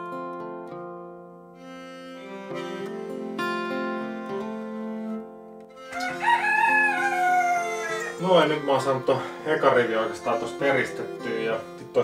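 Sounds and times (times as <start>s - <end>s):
plucked guitar music: 0.0s - 12.0s
rooster crowing: 5.9s - 8.2s.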